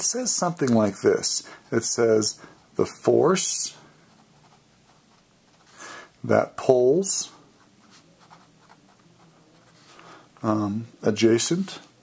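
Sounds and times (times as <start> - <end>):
pen scratching on paper: 3.8 - 5.7, 7.6 - 10.0.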